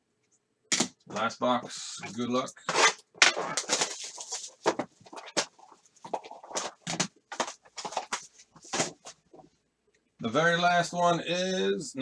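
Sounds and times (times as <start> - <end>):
cardboard and plastic wrap tearing: 2.6 - 5.5.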